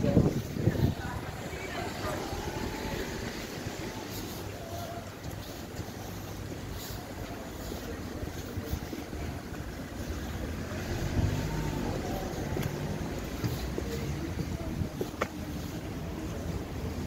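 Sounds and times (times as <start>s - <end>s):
wind buffeting microphone: 0.0s - 4.6s, 5.3s - 17.0s
street traffic: 0.0s - 17.0s
vehicle engine hum: 0.0s - 17.0s.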